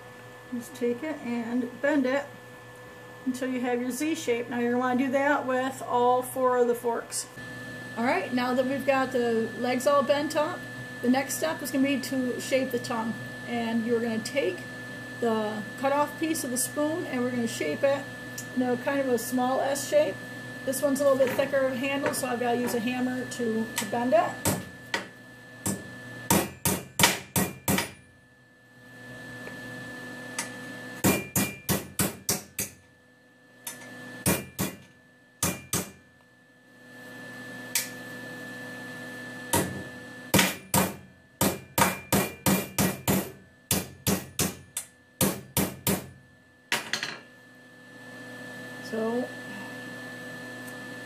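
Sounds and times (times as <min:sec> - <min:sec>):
hammer striking metal spoon: 0:25.7 - 0:28.0, 0:31.0 - 0:32.8, 0:33.7 - 0:36.0, 0:40.4 - 0:46.0.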